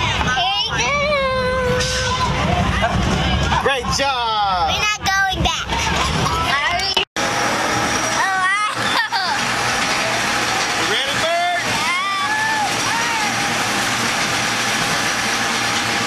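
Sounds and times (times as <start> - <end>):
rollercoaster rushing noise: 0.0 - 16.0.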